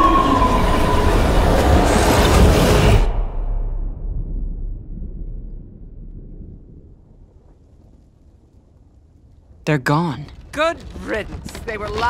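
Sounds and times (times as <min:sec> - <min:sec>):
deep earth rumble: 0:00.0 - 0:12.0.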